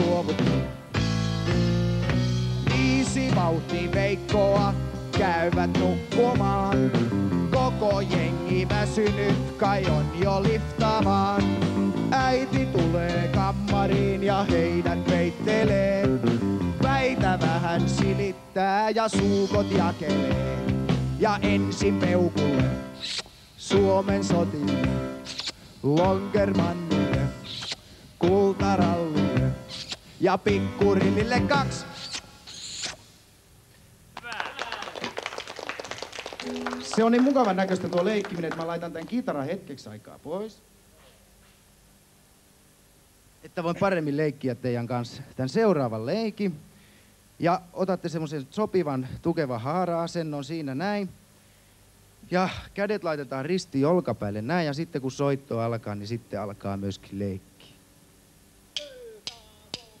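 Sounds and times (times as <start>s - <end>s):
brief hiss: 23.0s - 23.6s, 25.2s - 25.9s, 27.4s - 28.2s, 29.7s - 30.3s, 31.8s - 33.9s
children clapping: 34.2s - 39.2s.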